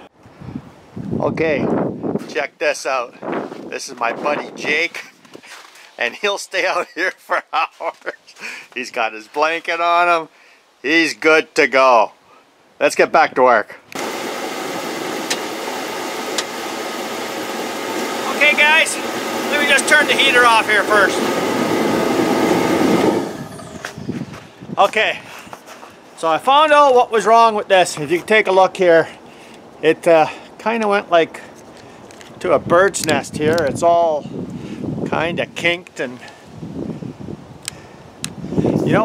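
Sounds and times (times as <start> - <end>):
wind buffeting microphone: 0.3 - 2.3, 20.8 - 25.3, 32.4 - 35.6, 36.5 - 39.0
space heater blowing: 14.0 - 24.7
man speaking: 18.2 - 21.3, 24.8 - 25.2, 26.2 - 29.1.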